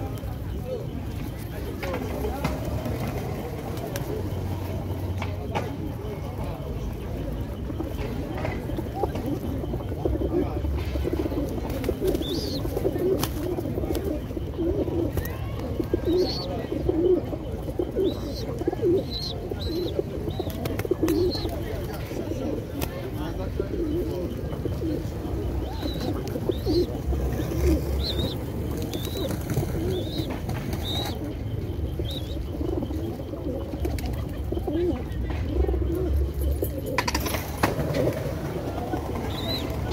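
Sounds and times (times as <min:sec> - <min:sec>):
pigeons cooing: 0:00.0 - 0:39.9.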